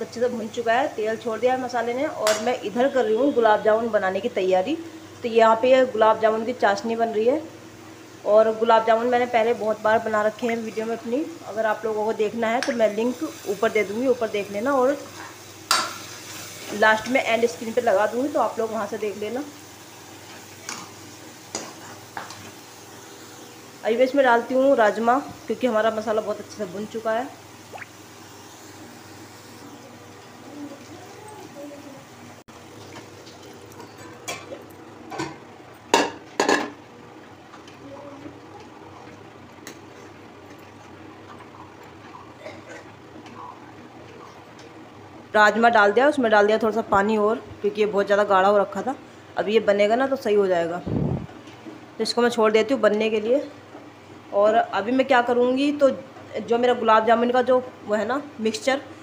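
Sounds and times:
faint sizzle of frying oil: 0.0s - 59.0s.

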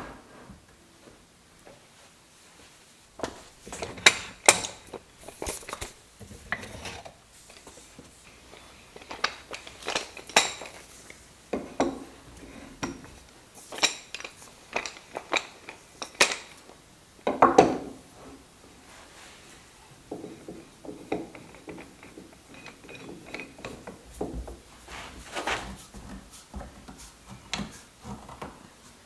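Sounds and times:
knocks and clinks on workbench: 17.3s - 18.0s.

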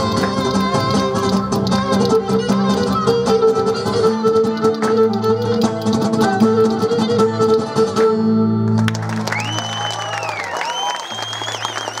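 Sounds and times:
bowed lyra and plucked lute music: 0.0s - 8.9s
applause: 8.7s - 12.0s
long whistle: 9.3s - 12.0s.

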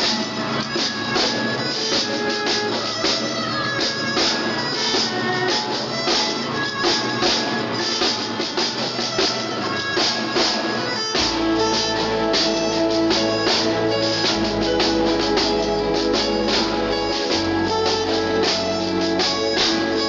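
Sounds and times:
drum kit beat: 0.0s - 20.0s
guitar: 0.0s - 20.0s
held chords: 0.0s - 20.0s
deep sustained bass: 11.2s - 20.0s.

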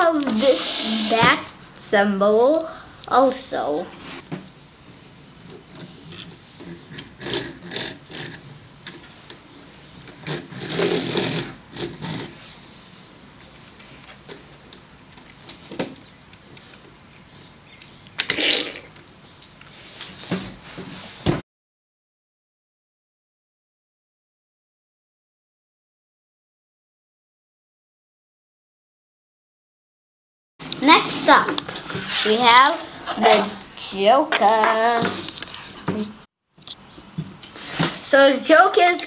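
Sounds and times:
plastic toy car on wooden table: 5.7s - 9.2s, 10.0s - 12.4s.

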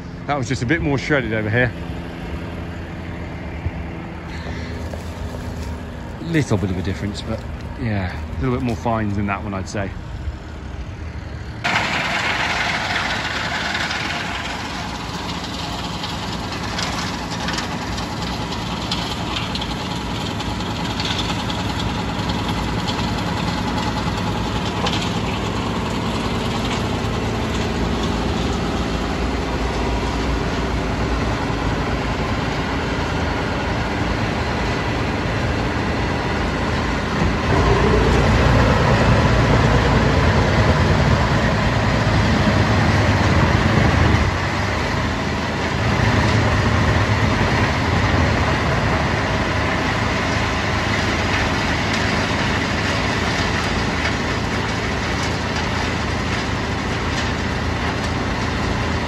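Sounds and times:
tractor engine under load: 0.0s - 59.0s
wood chipper blowing chips: 0.0s - 59.0s.

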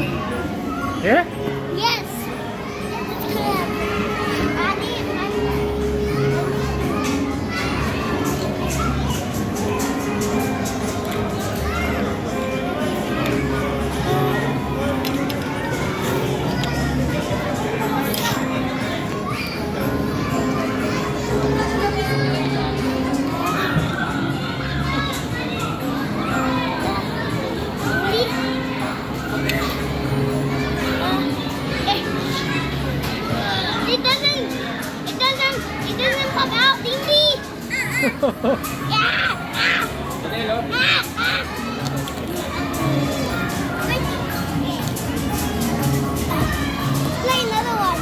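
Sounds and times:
children talking and calling out: 0.0s - 48.0s
faint music: 0.0s - 48.0s.

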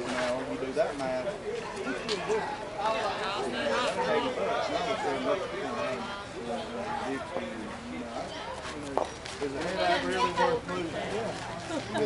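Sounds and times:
voices talking over one another: 9.6s - 11.3s.

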